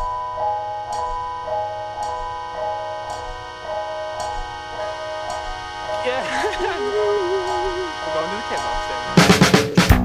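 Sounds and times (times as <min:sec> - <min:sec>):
backing track held tones: 0:00.0 - 0:09.9
man laughing: 0:06.0 - 0:08.5.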